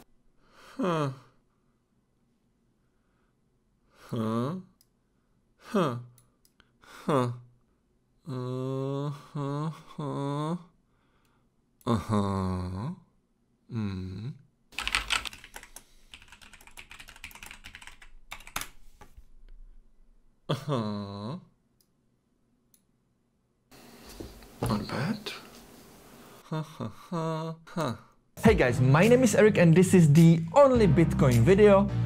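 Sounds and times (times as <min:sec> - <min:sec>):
man sighing: 0:00.4 - 0:01.4, 0:05.6 - 0:06.2, 0:08.2 - 0:13.0
computer keyboard typing: 0:14.8 - 0:18.8.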